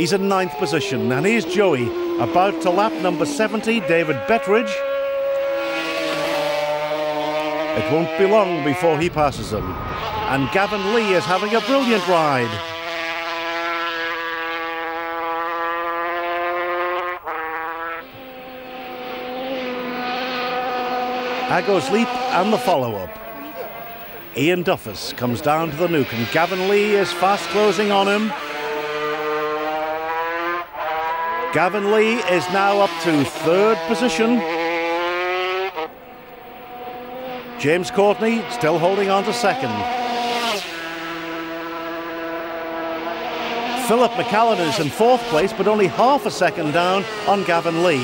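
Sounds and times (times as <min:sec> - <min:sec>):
racing motorcycle engine revving: 0:00.0 - 0:48.0.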